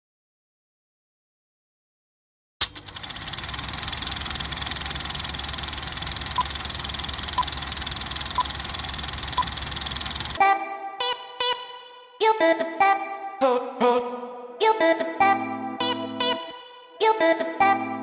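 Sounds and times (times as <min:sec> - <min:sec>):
film projector clattering: 0:02.6 - 0:10.4.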